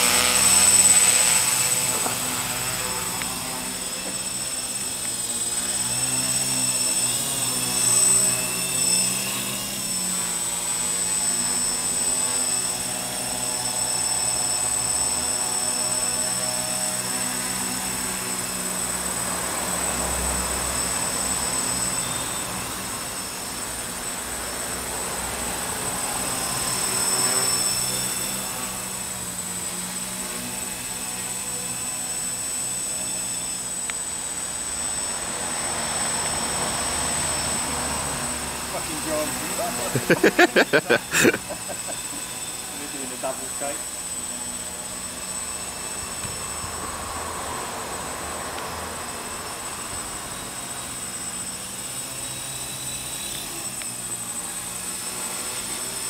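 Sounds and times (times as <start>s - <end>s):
quadcopter propellers whining: 0.0s - 56.0s.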